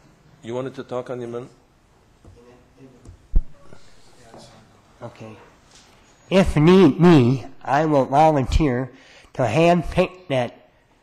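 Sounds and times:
thump on microphone: 3.3 - 3.6.

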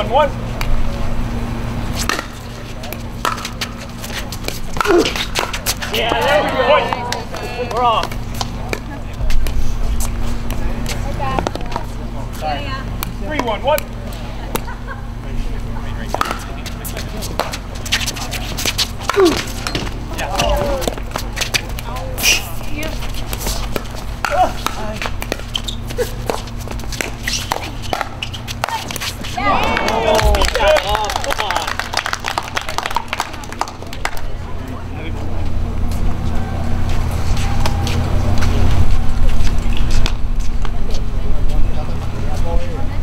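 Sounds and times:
voices: 0.0 - 43.0.

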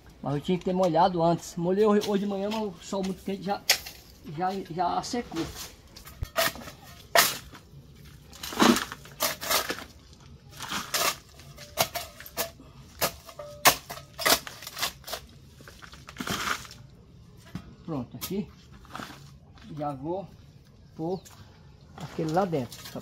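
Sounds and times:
metal trowel digging in soil: 8.3 - 16.8.

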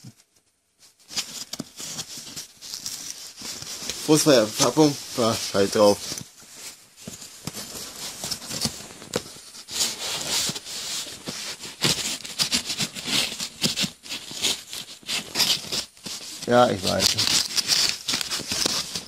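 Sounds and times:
cardboard rustling and tearing: 0.9 - 19.0.

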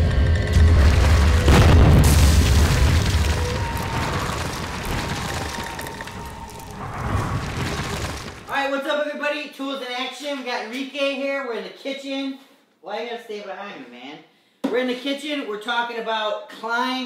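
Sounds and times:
crashing boom: 0.0 - 8.5
deep rumble: 0.0 - 8.5.

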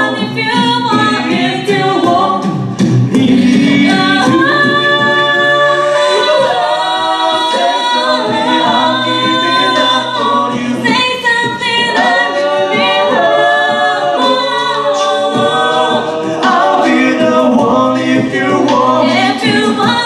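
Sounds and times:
a cappella group singing ballad: 0.0 - 20.0.

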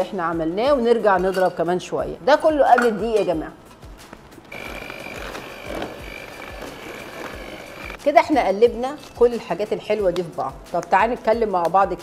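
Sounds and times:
electric hand mixer whining: 4.5 - 8.0.

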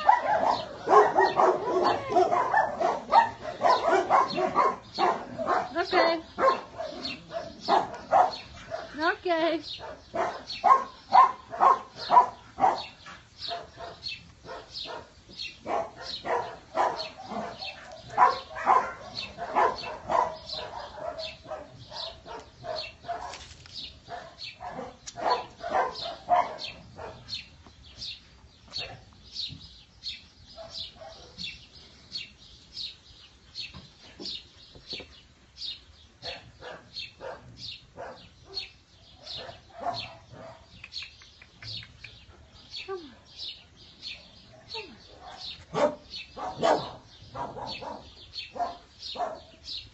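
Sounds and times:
young dogs yapping: 0.0 - 9.0, 9.8 - 23.5, 24.1 - 27.4, 44.7 - 49.6.

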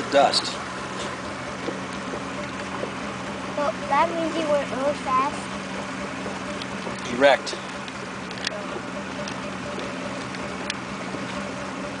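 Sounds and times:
motorboat engine drone: 0.0 - 12.0
water rushing: 0.0 - 12.0.

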